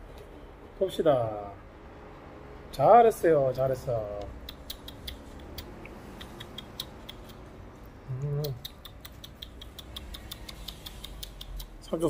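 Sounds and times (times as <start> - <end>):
dog teeth nibbling clicks: 4.2 - 7.5, 8.4 - 11.8.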